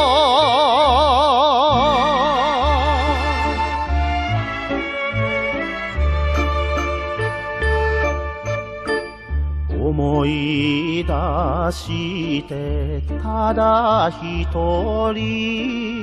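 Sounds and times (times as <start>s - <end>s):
person singing with vibrato: 0.0s - 4.0s, 9.7s - 16.0s
instrumental music with bass pulse: 0.0s - 16.0s.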